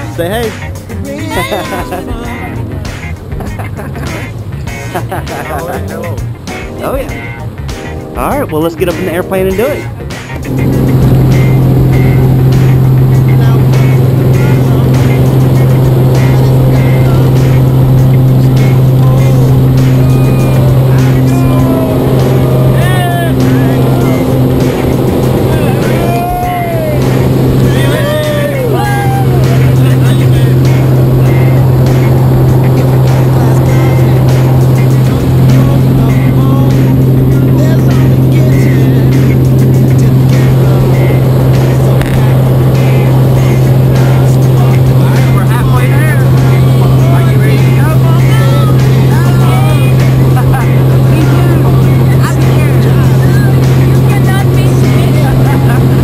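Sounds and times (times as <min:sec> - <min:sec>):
voices calling out: 0:00.0 - 0:06.3, 0:09.2 - 0:56.0
plane engine and propeller droning: 0:00.0 - 0:56.0.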